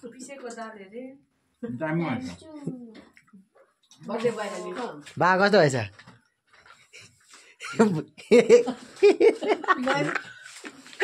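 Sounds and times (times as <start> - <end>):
person's voice: 1.7 - 2.7, 9.7 - 10.3.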